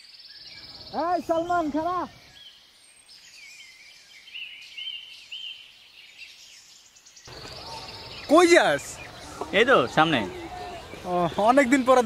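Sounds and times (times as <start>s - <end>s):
small birds chirping: 0.0s - 12.0s.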